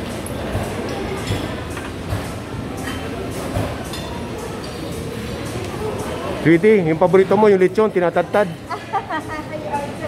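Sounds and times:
busy room background noise: 0:00.0 - 0:10.0.

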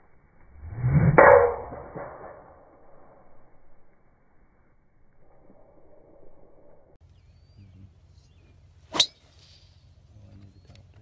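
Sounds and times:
faint outdoor background noise: 0:00.0 - 0:11.0.

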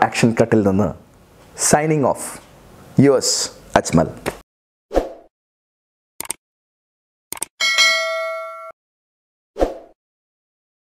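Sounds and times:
bell-like notification ding: 0:07.6 - 0:08.8.

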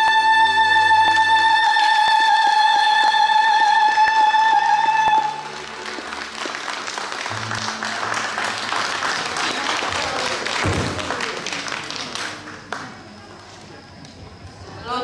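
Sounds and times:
audience applauding: 0:03.7 - 0:13.6.

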